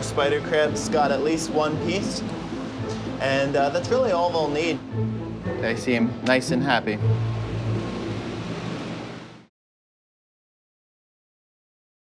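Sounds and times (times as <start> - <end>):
low hum with hiss: 0.0 - 9.5.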